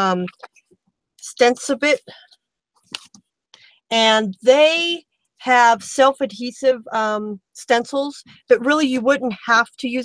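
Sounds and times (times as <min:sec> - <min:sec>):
woman speaking: 0:00.0 - 0:00.5, 0:01.2 - 0:02.2, 0:03.9 - 0:10.0.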